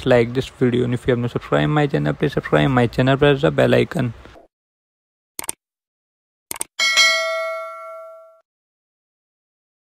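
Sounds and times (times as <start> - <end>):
bell-like ding: 6.8 - 8.4.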